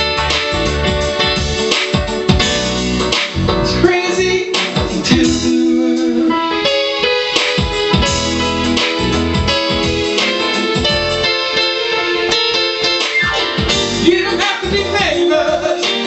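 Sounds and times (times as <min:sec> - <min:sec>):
piano-like keyboard chords: 0:00.0 - 0:16.0.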